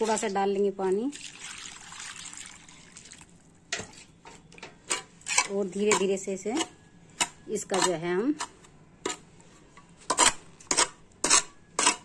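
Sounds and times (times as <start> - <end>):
water pouring and splashing: 0.0 - 4.0.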